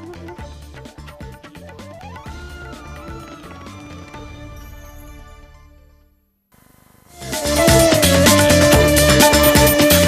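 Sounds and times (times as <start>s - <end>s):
news theme music with deep pulses: 2.1s - 6.2s
rising tone: 2.2s - 6.2s.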